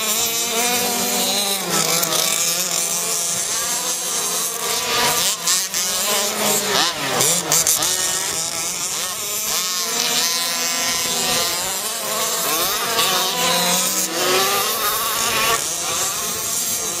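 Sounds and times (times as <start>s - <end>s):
rc buggy engines revving: 0.0s - 17.0s.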